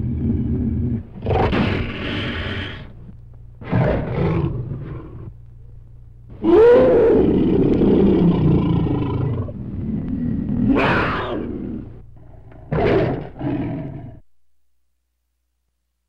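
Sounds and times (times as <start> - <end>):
large animal roaring: 0.0 - 2.9, 3.6 - 5.3, 6.4 - 14.2.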